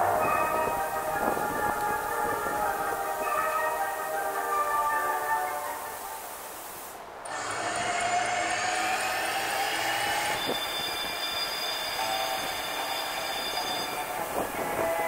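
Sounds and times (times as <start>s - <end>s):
music over loudspeakers: 0.0s - 6.2s
steady high tones: 0.0s - 15.0s
train sound effect with rising whine: 4.4s - 15.0s.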